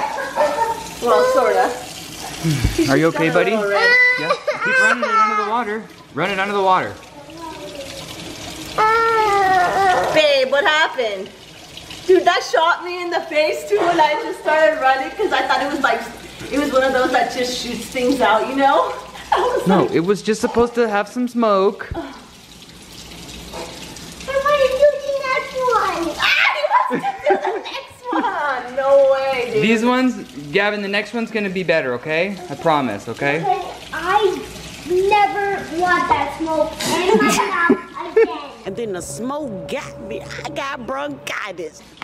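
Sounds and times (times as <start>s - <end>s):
faucet running into sink: 0.0s - 42.0s
child crying: 3.6s - 5.6s, 8.7s - 10.5s, 24.3s - 27.9s
child's high wordless voice: 3.7s - 4.9s, 7.1s - 10.2s, 24.3s - 26.9s, 33.4s - 38.7s, 39.7s - 41.9s.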